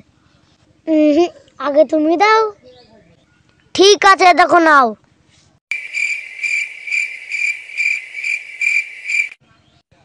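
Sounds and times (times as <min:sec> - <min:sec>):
cricket chirping: 0:05.7 - 0:09.4.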